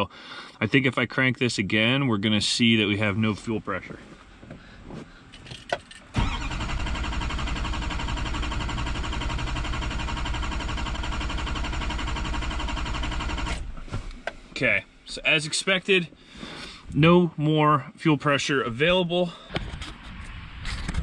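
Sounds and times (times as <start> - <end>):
diesel engine cranking: 5.3 - 13.8.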